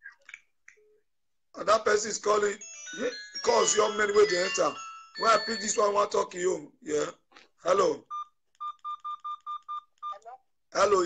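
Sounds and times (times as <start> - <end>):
phone beeps: 8.1 - 10.3.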